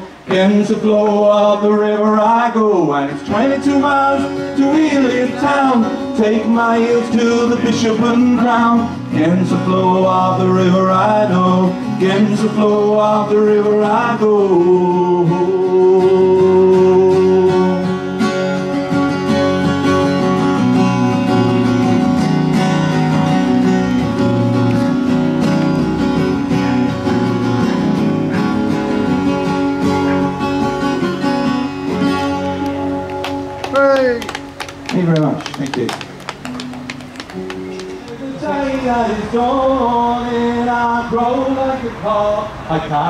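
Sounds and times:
strummed acoustic guitar: 0.0 - 35.3, 36.0 - 43.0.

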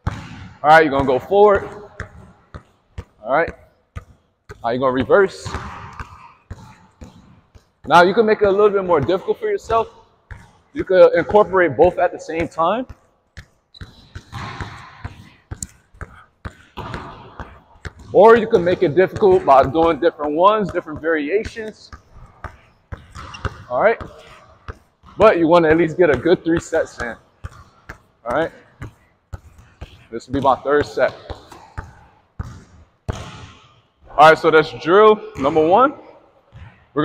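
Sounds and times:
basketball dribbling on gym court: 0.0 - 37.0.

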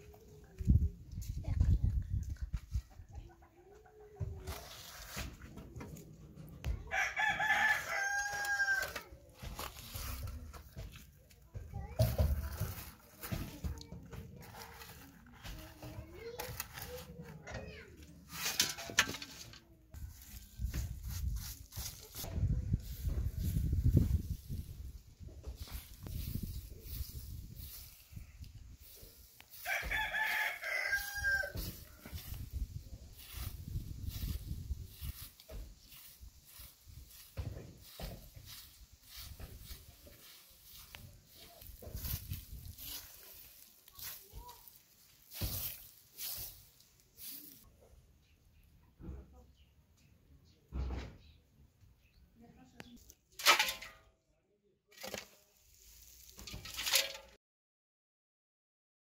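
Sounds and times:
broom sweeping dry dirt: 4.3 - 6.2, 6.8 - 47.7, 55.0 - 57.3
spade scraping: 4.4 - 6.4, 7.3 - 11.2, 12.1 - 20.9, 22.9 - 47.7, 53.0 - 54.1, 54.9 - 57.4
rooster crowing: 6.9 - 9.0, 29.6 - 31.7.

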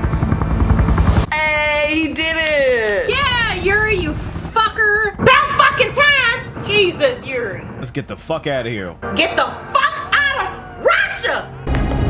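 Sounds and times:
deep pulsing rumble: 0.0 - 2.0, 3.0 - 8.0.

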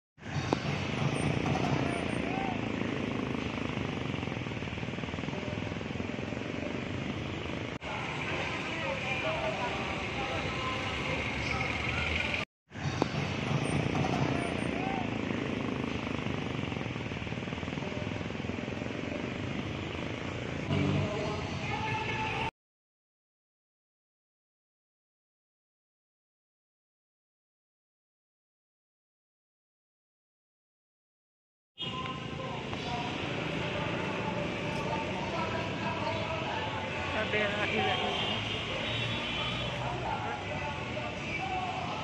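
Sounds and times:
indistinct voices of passers-by: 0.2 - 22.5, 31.8 - 42.0
traffic noise: 0.2 - 22.5, 31.8 - 42.0.

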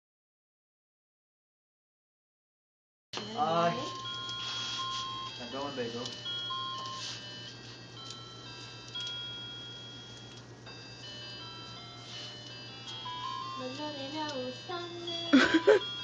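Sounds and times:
electronic beeping tune: 3.2 - 8.4
steady low hum: 3.2 - 16.0.

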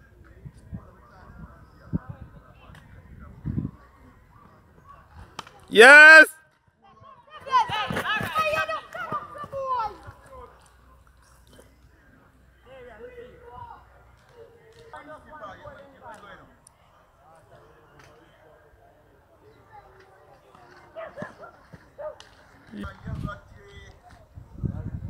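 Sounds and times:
players shouting and calling: 3.9 - 11.1.

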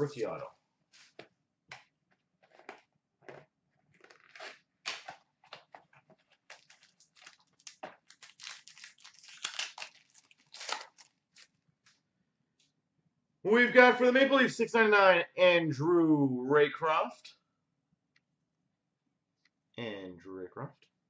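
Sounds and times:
wrapper crinkling: 4.0 - 12.0.

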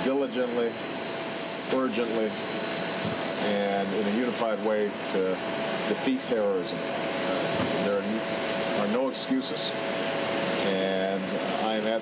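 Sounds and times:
aircraft engines hissing and whining: 0.0 - 12.0
man speaking: 1.7 - 2.4, 3.4 - 9.8, 10.6 - 12.0.

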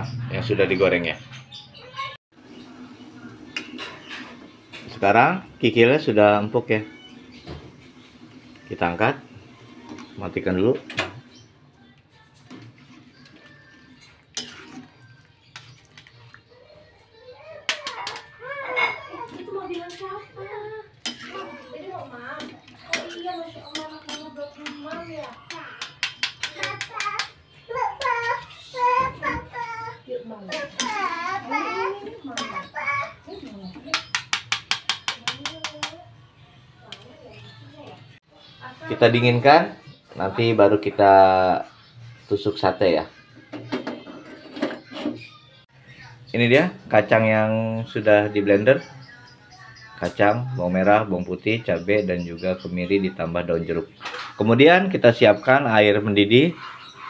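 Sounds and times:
children talking and playing: 0.0 - 2.6, 6.5 - 57.0.

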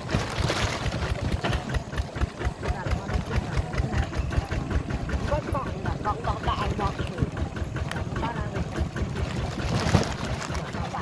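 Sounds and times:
hand tractor engine running: 0.0 - 11.0
voices: 0.0 - 11.0.

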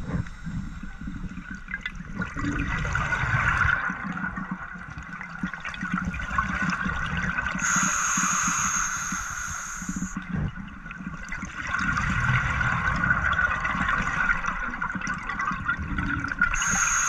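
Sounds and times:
underwater exhaled bubbles gurgling: 0.0 - 17.0
regulator inhalation hiss: 7.6 - 10.2, 16.6 - 17.0.

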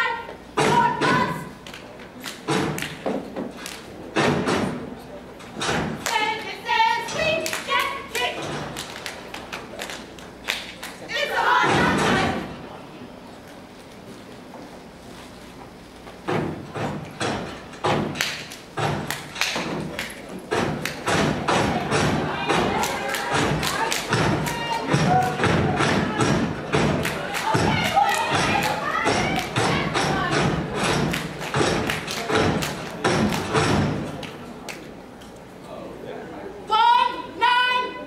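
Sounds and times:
hand claps: 1.6 - 3.9, 7.4 - 11.0, 17.9 - 34.9.

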